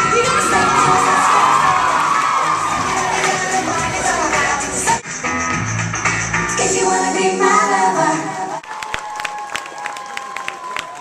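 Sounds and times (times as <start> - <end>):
audience cheering and screaming: 0.0 - 4.0, 8.6 - 11.0.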